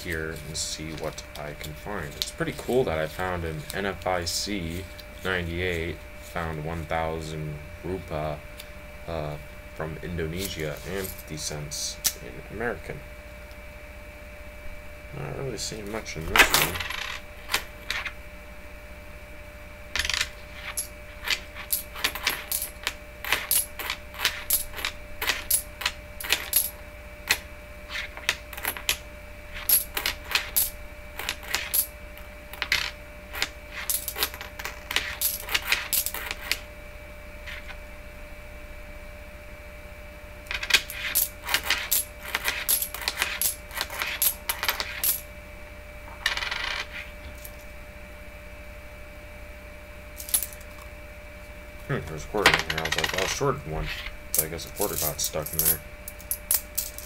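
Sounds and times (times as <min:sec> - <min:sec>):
coins clinking on wooden table: 0:16.4 - 0:18.1, 0:20.0 - 0:26.7, 0:27.3 - 0:29.0, 0:29.6 - 0:31.9, 0:32.6 - 0:36.6, 0:40.5 - 0:45.2, 0:46.2 - 0:47.5, 0:50.2 - 0:50.6, 0:52.4 - 0:57.0.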